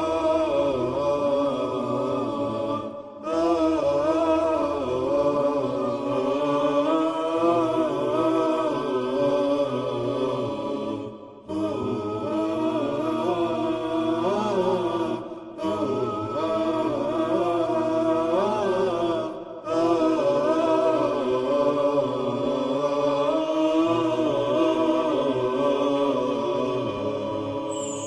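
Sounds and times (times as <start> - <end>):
layered vocal chant: 0.0 - 28.0.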